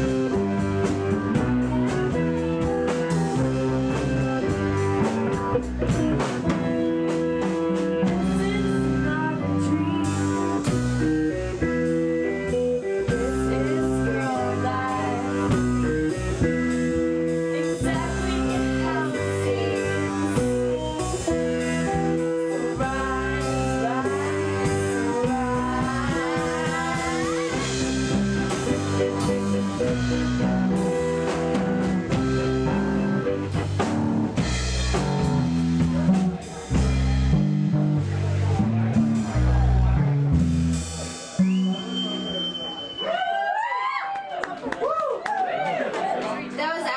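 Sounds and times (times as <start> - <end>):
live blues-rock band: 0.0 - 46.9
person singing: 6.5 - 33.3.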